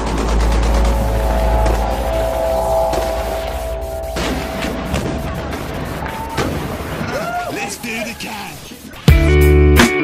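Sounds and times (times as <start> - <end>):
faint music: 0.0 - 6.3.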